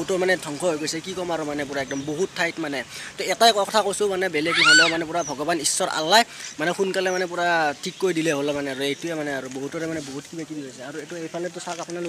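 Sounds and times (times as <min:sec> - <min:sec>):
man talking: 0:00.0 - 0:12.0
high-pitched rising and falling call: 0:04.4 - 0:05.1.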